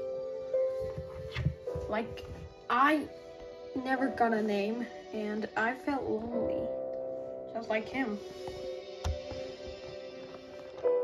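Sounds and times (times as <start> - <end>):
background music with held notes: 0.0 - 11.0
soft low thumps: 0.8 - 2.9
voice: 1.8 - 3.1, 3.8 - 6.8, 7.6 - 8.2.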